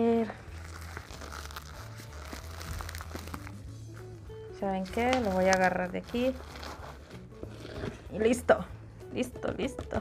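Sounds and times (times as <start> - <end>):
plastic pot crinkling and clicking: 4.8 - 6.3.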